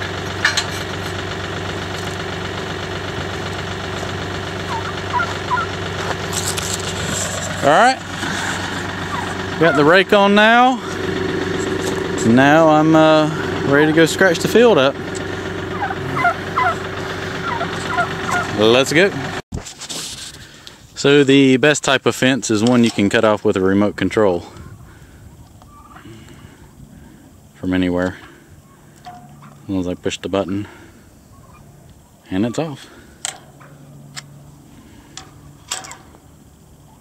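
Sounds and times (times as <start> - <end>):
steady engine hum: 0.0 - 19.4, 20.0 - 37.0
turkey calling: 4.1 - 11.9, 15.0 - 18.8, 24.5 - 27.4, 28.4 - 36.1, 36.8 - 37.0.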